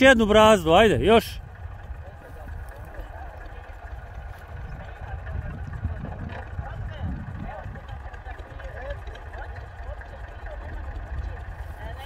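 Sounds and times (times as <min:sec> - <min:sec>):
distant tractor engine rumble: 0:00.0 - 0:12.0.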